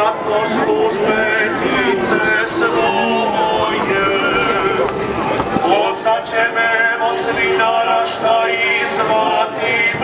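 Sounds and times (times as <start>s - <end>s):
voices singing a hymn: 0.0s - 10.0s.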